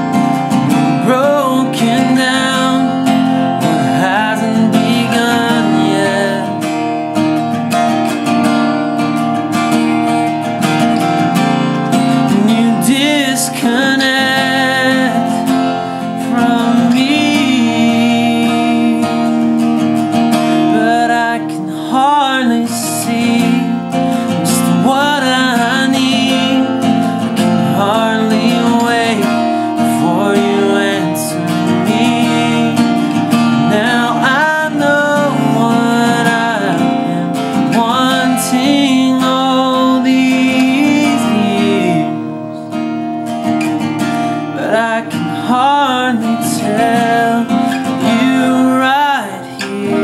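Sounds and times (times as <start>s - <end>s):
man singing: 0.0s - 6.9s, 11.9s - 42.5s, 44.5s - 50.0s
acoustic guitar strumming: 0.0s - 50.0s.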